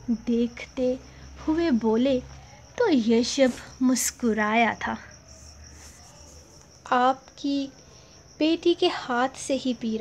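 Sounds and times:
woman narrating: 0.0s - 5.2s, 6.8s - 7.8s, 8.4s - 10.0s
faint high-pitched background noise: 0.0s - 10.0s.

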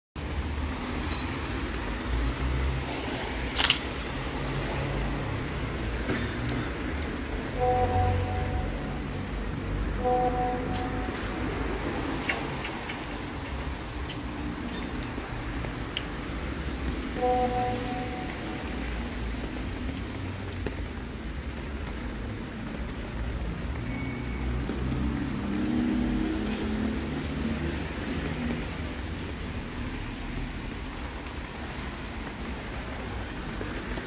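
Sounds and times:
rain hiss: 0.2s - 34.0s
traffic rumble: 0.2s - 34.0s
sharp clicks: 3.6s - 4.0s
two-note beep: 7.6s - 9.2s, 10.0s - 11.7s, 17.2s - 19.0s.

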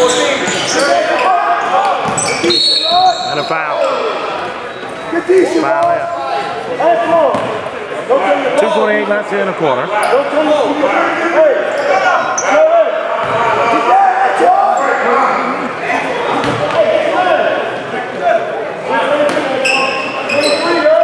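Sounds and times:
sneakers squeaking: 0.0s - 7.8s, 11.7s - 13.4s, 16.3s - 16.8s, 19.2s - 21.0s.

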